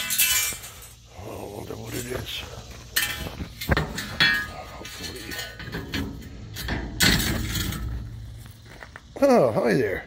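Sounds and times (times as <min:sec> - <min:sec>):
metal scraping and rumble: 0:00.0 - 0:08.7
metal dumpster door clatter: 0:03.0 - 0:08.2.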